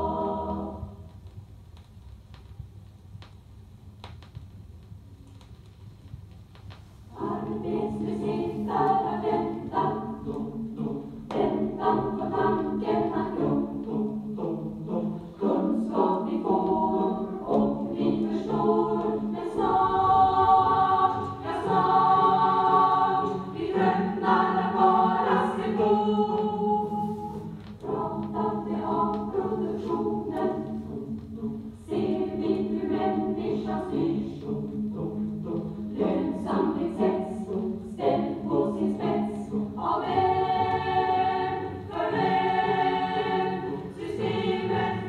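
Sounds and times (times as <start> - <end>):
choir singing sustained chords: 0.0 - 1.1, 7.1 - 45.0.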